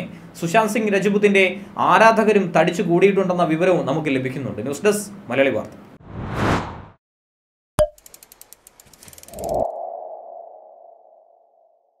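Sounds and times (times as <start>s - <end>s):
fast ratchet-like ticks: 8.0s - 9.6s.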